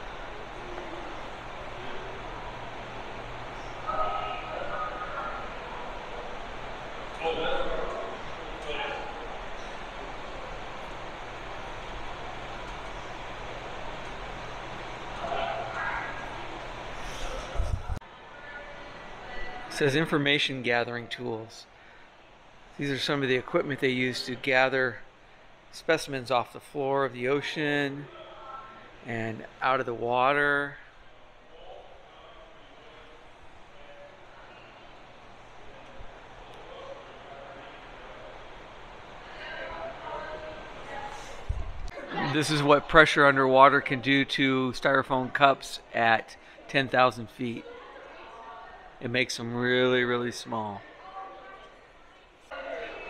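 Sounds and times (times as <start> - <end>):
faint indistinct voices: 0.0 - 23.2, 27.8 - 29.6, 30.4 - 53.0.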